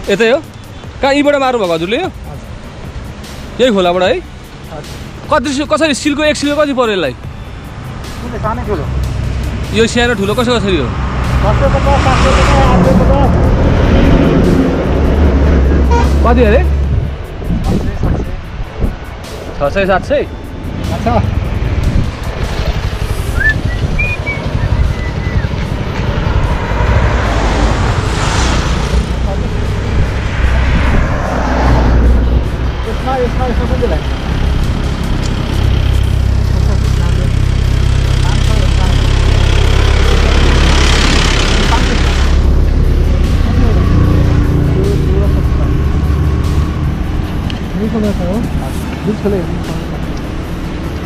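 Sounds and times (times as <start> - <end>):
road noise: 0.0 - 51.0.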